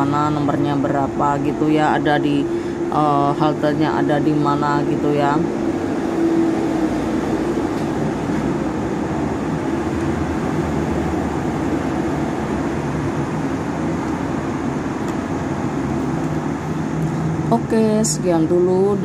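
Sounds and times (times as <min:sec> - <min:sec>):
cars passing on road: 0:00.0 - 0:19.0
steady low hum: 0:00.0 - 0:19.0.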